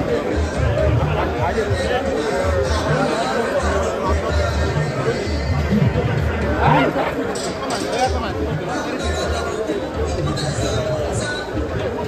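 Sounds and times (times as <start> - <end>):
crowd chatter: 0.0 - 12.0
music with deep bass: 0.0 - 12.0
voices talking close by: 0.0 - 12.0.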